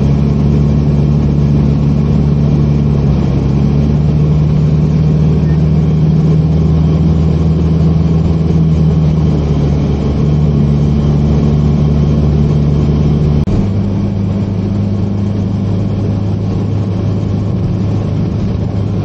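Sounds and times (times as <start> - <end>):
car engine cruising: 0.0 - 19.0
road noise: 0.0 - 19.0.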